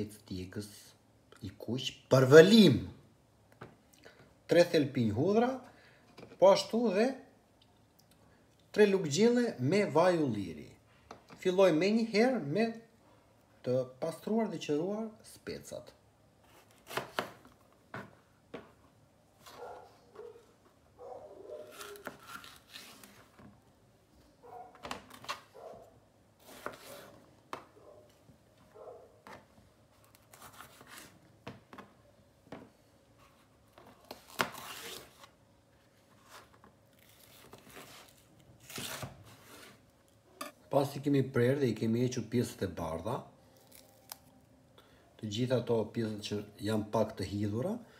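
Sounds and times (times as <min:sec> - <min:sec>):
peppers snapping and tearing: 0:43.6 - 0:44.3.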